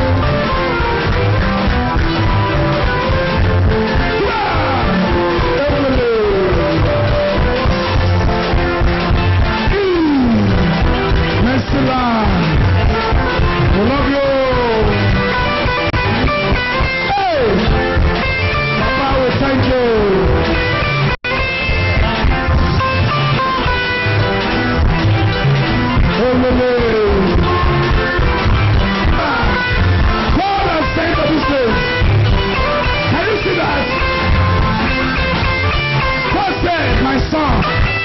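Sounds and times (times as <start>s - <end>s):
upbeat church band music: 0.0s - 38.0s.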